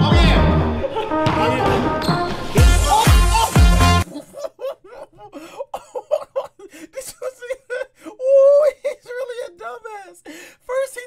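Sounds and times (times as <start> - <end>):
man giggling: 0.8 - 2.0, 2.6 - 10.0.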